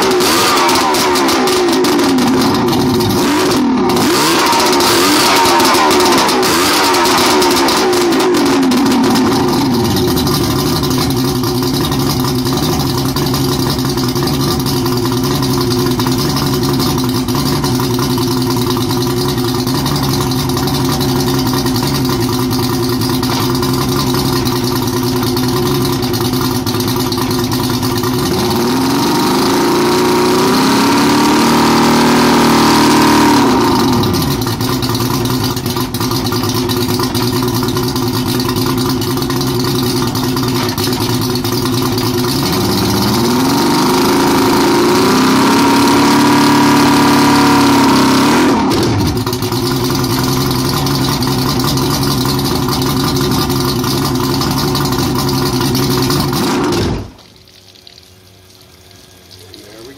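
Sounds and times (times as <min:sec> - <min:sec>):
outboard motor idling and revving: 0:00.0 - 0:57.2.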